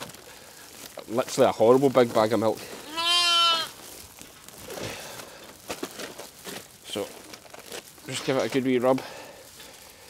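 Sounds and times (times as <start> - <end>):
plastic feed bag rustling: 0.0 - 10.0
straw rustling: 0.0 - 10.0
sheep bleating: 2.8 - 3.8.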